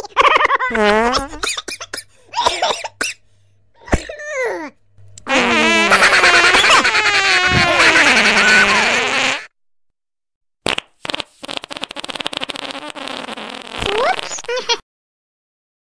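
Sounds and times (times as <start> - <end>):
fart sound effects: 0.7 - 1.4, 5.2 - 9.6, 10.6 - 14.8.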